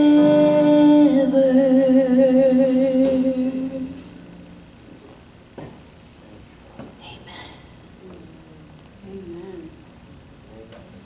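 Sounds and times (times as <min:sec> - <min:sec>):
woman singing with vibrato: 0:00.0 - 0:04.3.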